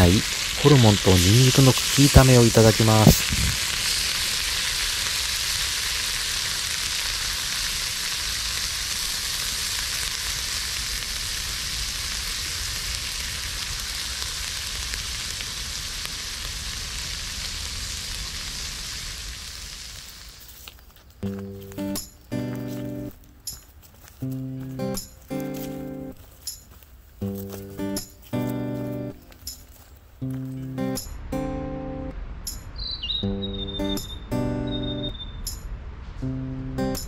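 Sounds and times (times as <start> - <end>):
food sizzling in a skillet: 0.0 - 23.2
music: 21.2 - 26.6, 27.2 - 32.6, 33.2 - 35.2, 36.2 - 37.0.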